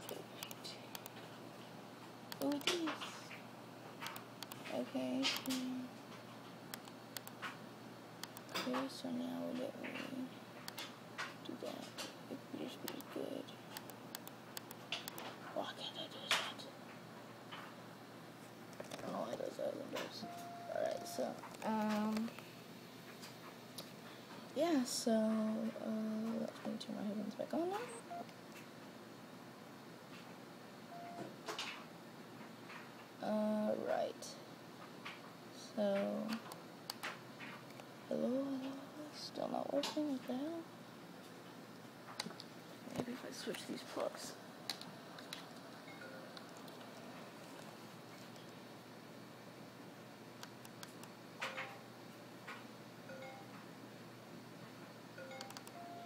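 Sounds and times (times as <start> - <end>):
brief beep tone: 20.2 - 21.1.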